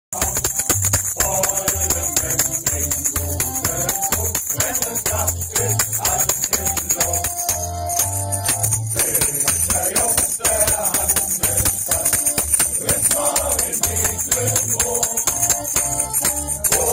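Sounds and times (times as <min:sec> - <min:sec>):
fast high-pitched percussion beat: 0:00.1 - 0:16.9
band with pulsing bass line: 0:00.2 - 0:16.9
men's choir singing a sea shanty: 0:00.2 - 0:16.9.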